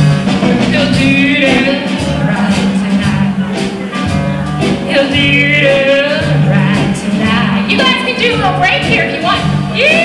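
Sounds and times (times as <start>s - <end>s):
acoustic and electric guitars: 0.0s - 10.0s
steady bass line: 0.0s - 10.0s
woman singing: 0.6s - 3.4s, 4.8s - 10.0s.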